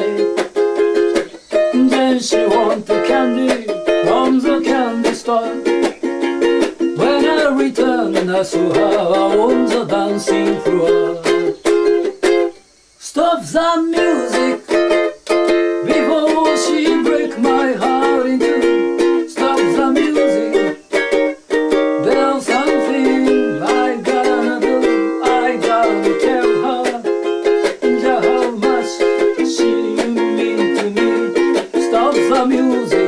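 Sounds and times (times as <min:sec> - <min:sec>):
ukulele strumming: 0:00.0 - 0:33.0.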